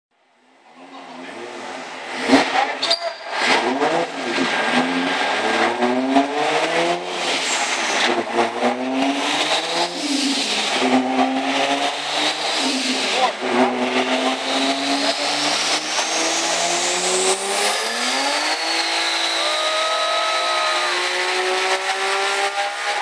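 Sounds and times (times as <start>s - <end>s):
car engine at full throttle: 0.4s - 23.0s.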